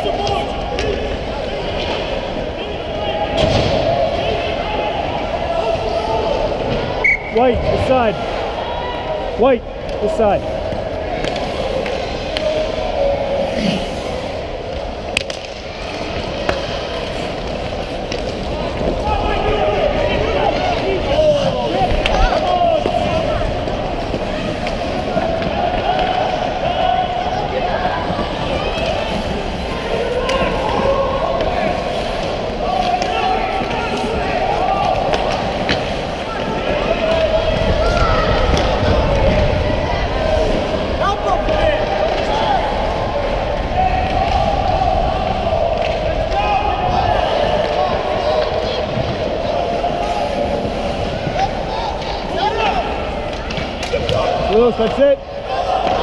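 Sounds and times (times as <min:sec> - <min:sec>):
hockey sticks and puck clacking: 0:00.0 - 0:02.5, 0:09.8 - 0:56.0
voices shouting in a rink: 0:00.0 - 0:56.0.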